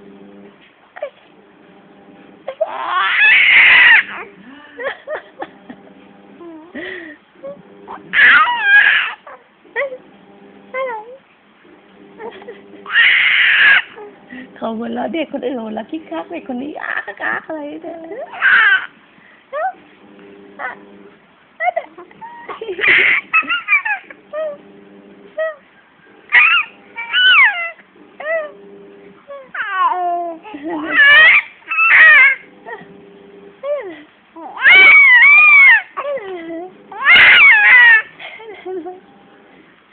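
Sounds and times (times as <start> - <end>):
baby cooing: 2.5 - 4.2, 8.1 - 9.4, 12.9 - 14.1, 18.3 - 18.9, 21.9 - 24.6, 26.3 - 28.6, 29.3 - 32.5, 34.4 - 38.1
baby squealing: 2.5 - 4.2, 8.1 - 9.4, 12.9 - 14.0, 18.3 - 18.9, 22.2 - 24.5, 26.3 - 28.5, 29.4 - 32.5, 34.4 - 36.2, 36.9 - 38.1.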